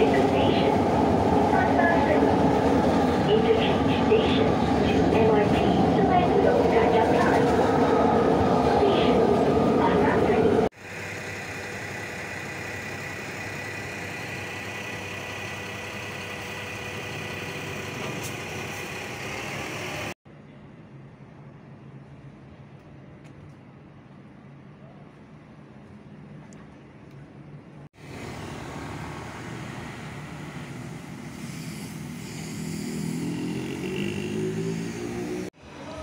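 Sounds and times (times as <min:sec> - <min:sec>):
train rumbling: 0:00.0 - 0:20.2, 0:20.8 - 0:36.0.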